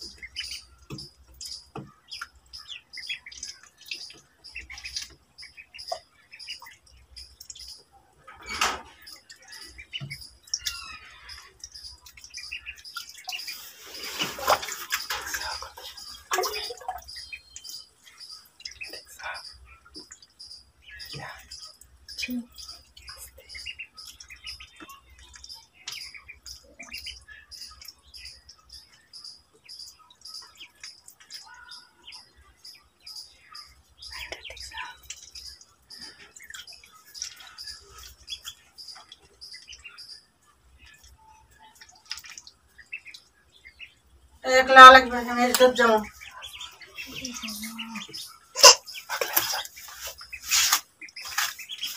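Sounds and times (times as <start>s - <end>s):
ducklings peeping: 0.0s - 51.9s
splashing water: 12.0s - 19.4s, 45.0s - 51.9s.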